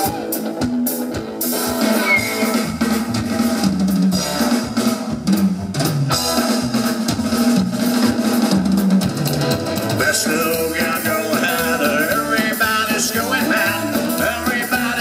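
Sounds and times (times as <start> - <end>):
drum kit beat: 0.0 - 15.0
electric guitar: 0.0 - 15.0
upright bass line: 0.0 - 15.0.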